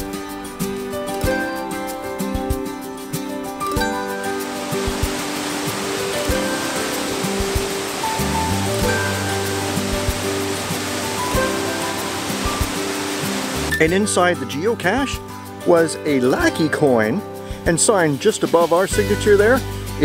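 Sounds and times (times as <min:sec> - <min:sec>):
background music sustained notes: 0:00.0 - 0:20.0
waterfall rushing: 0:03.9 - 0:13.8.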